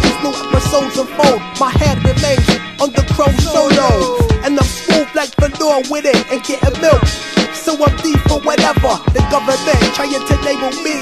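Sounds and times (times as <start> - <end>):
rapping over a beat: 0.0 - 11.0.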